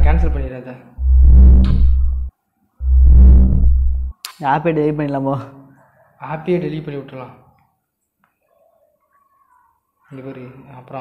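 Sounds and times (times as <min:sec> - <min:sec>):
deep distorted rumbling effect: 0:00.0 - 0:04.1.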